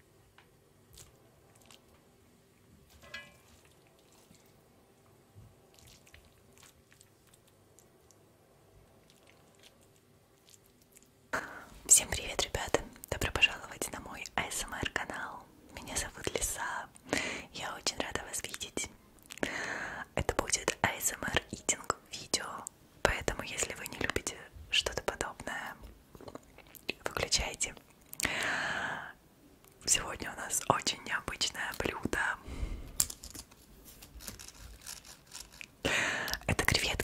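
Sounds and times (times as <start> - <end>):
woman whispering: 11.4 - 18.9, 20.0 - 27.9, 29.8 - 32.4, 36.3 - 37.0.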